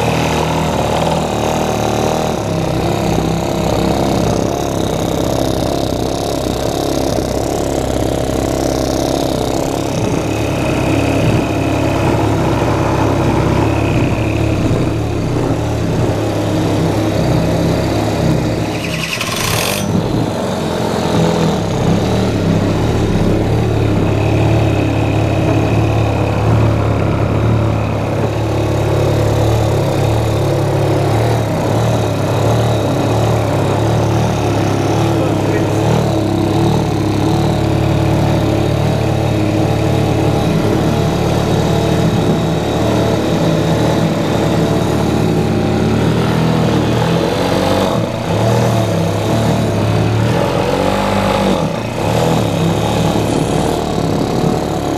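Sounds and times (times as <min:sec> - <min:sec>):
scooter engine running: 0:00.0 - 0:54.9.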